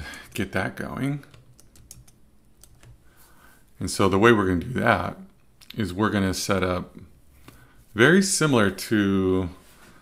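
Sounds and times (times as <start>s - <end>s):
man speaking: 0.0s - 1.4s, 3.8s - 7.1s, 7.9s - 9.6s
computer keyboard clicks: 1.2s - 3.0s.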